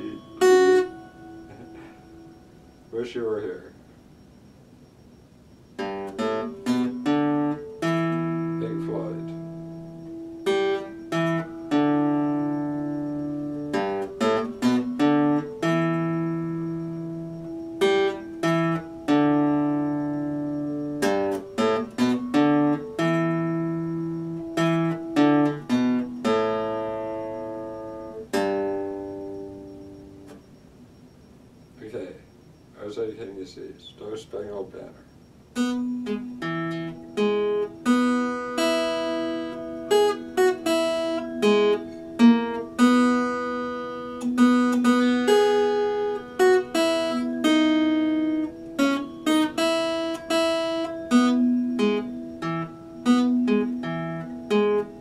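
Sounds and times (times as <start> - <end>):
acoustic guitar played solo: 0.0 - 2.9, 5.8 - 30.4, 35.5 - 55.0.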